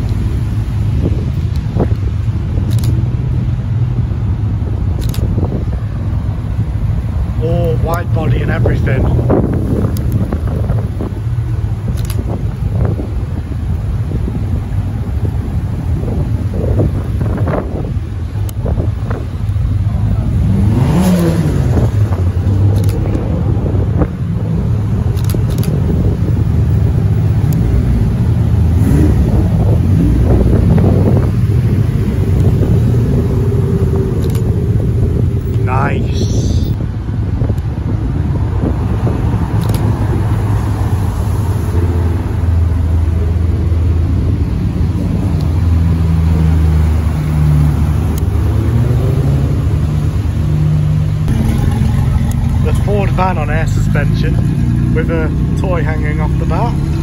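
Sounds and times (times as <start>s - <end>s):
car engines rumbling on wet road: 0.0s - 57.0s.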